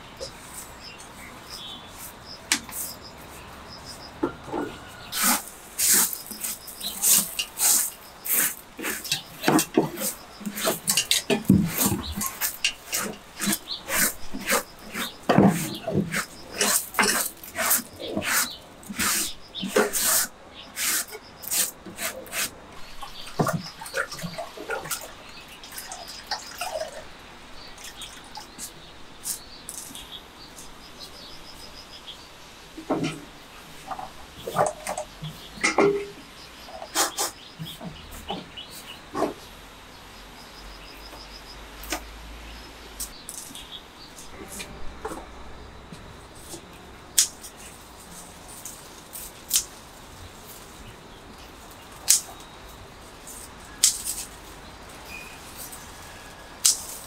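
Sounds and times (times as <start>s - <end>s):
dry leaves rustling on wood: 0.0s - 27.1s, 46.0s - 57.0s.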